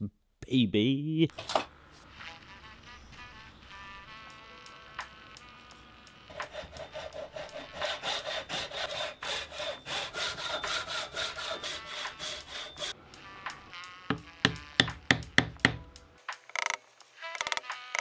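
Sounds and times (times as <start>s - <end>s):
hand saw cutting wood: 6.3s - 13.0s
chisel struck on wood: 14.1s - 15.8s.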